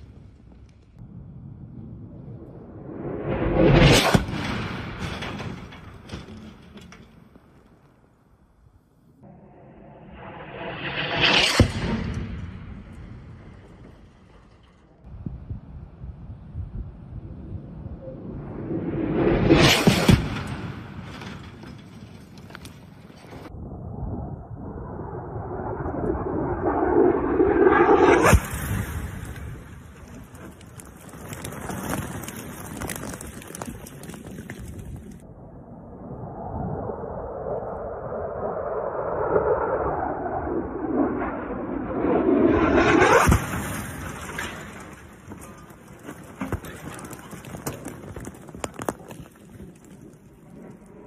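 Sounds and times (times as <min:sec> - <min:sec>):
low rumble: 0:00.0 - 0:07.4, 0:09.1 - 0:22.4, 0:23.1 - 0:31.4, 0:33.5 - 0:45.8
dirt and debris pattering: 0:19.7 - 0:23.5, 0:28.2 - 0:35.3, 0:43.1 - 0:51.0.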